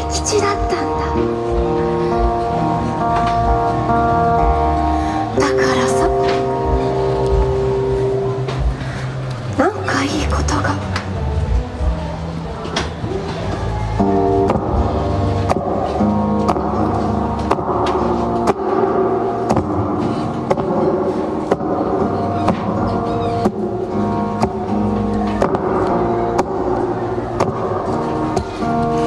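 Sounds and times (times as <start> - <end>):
acoustic guitar strumming: 0.0 - 9.5, 14.0 - 29.0.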